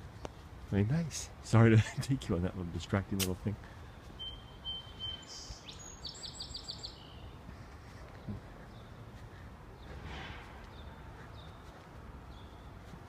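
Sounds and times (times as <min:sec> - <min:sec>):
low outdoor hum: 0:00.0 - 0:13.0
songbird chirping: 0:02.5 - 0:13.0.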